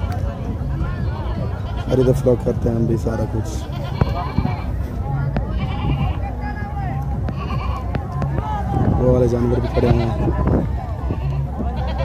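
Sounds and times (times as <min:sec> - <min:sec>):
chatter of many voices: 0:00.0 - 0:12.0
goats bleating: 0:01.1 - 0:02.3, 0:03.4 - 0:04.8, 0:05.4 - 0:06.4, 0:07.2 - 0:08.0, 0:09.4 - 0:10.3, 0:11.1 - 0:12.0.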